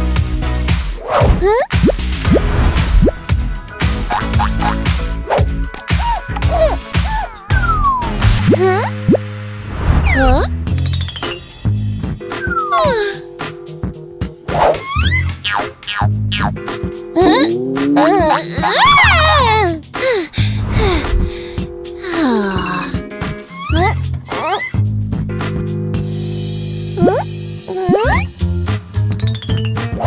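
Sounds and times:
cartoon background music: 0.0s - 30.0s
cartoon character whimpering: 1.4s - 1.7s, 12.7s - 13.2s, 17.2s - 21.0s, 22.0s - 24.8s, 27.0s - 28.3s.

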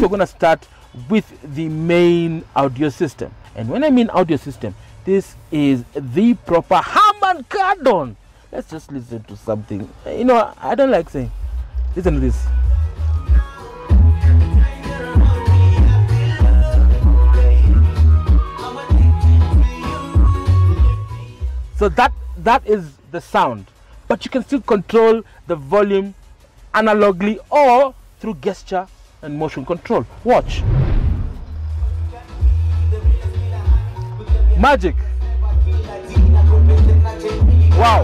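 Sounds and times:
music with heavy deep bass: 9.5s - 22.8s, 30.0s - 38.0s.

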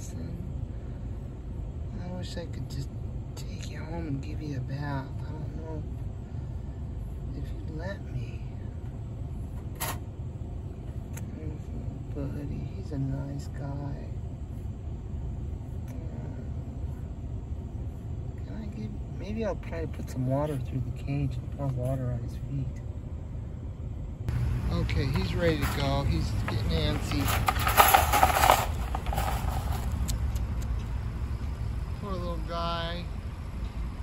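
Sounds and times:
low steady rumble: 0.0s - 34.0s
low rumble: 22.2s - 34.0s
metal door scraping open: 25.5s - 30.0s
wire trap rattling: 25.5s - 30.2s.

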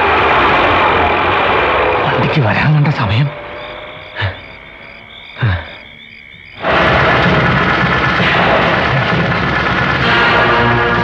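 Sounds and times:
insects chirping: 0.0s - 10.8s
loud dense film music: 0.0s - 11.0s
low falling calls: 0.0s - 11.0s.

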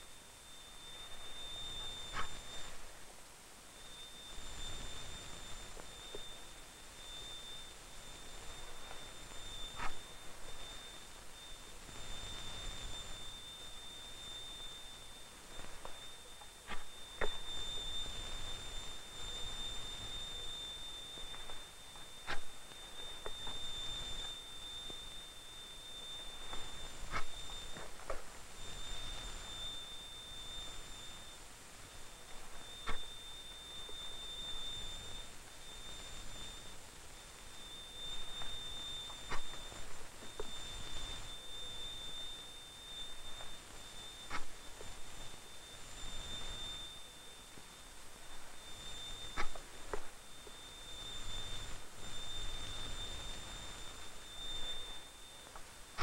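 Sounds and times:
film hiss: 0.0s - 56.0s.

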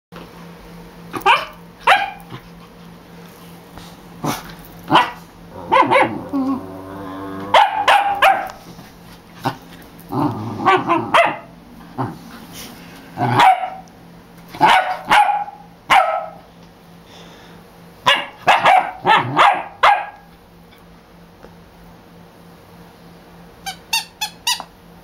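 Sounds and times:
puppy barking: 1.1s - 2.3s, 4.9s - 6.3s, 7.5s - 8.6s, 10.6s - 11.6s, 13.2s - 13.9s, 14.6s - 16.4s, 18.0s - 20.3s
puppy growling: 4.2s - 8.6s, 9.2s - 13.4s.

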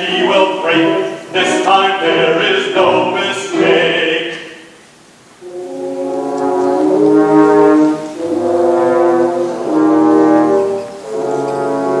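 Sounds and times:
orchestra playing held chords: 0.0s - 4.8s, 5.4s - 12.0s.

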